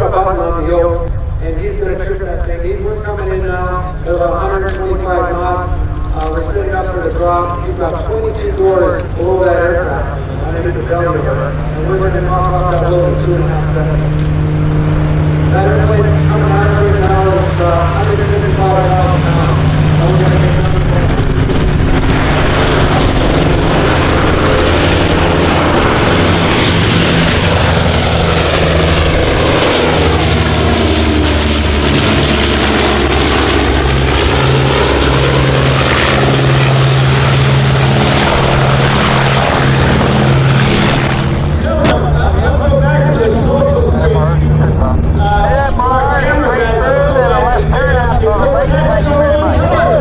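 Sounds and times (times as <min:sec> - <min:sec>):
propeller aircraft engines droning: 0:00.0 - 0:50.0.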